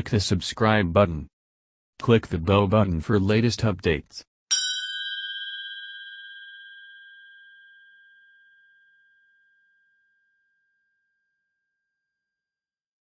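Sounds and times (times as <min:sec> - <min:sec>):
bell-like chime ringing: 0:04.5 - 0:11.6.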